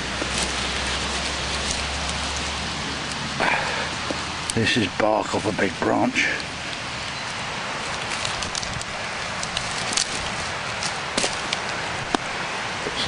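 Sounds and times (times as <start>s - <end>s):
twigs snapping and crackling: 0.0s - 5.6s, 6.3s - 12.4s
rushing water: 0.0s - 13.0s.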